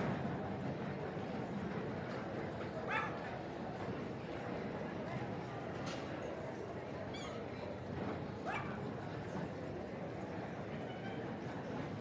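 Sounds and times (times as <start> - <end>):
murmur of indoor hall: 0.0 - 12.0.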